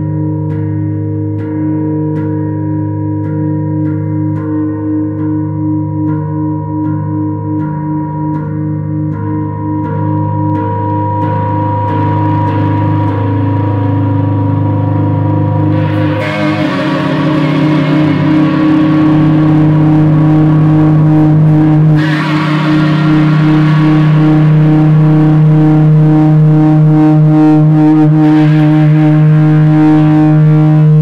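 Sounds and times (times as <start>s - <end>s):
electric guitar feedback drone: 0.0s - 31.0s.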